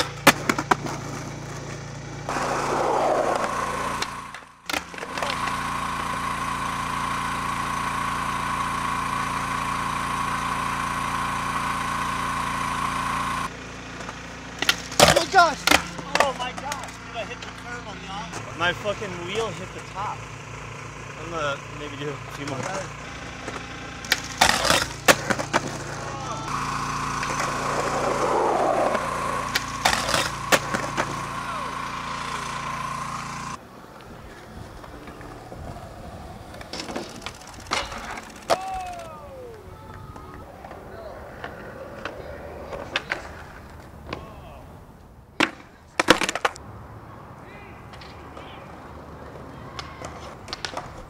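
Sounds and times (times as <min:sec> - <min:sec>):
skateboard popping and landing clacks: 0:00.0 - 0:02.6, 0:03.2 - 0:05.6, 0:14.0 - 0:17.0, 0:23.4 - 0:26.1, 0:27.2 - 0:31.3, 0:39.9 - 0:44.4, 0:45.3 - 0:46.6, 0:49.2 - 0:51.0
skateboards rolling on concrete: 0:00.0 - 0:51.0
steady high whine: 0:02.1 - 0:45.1.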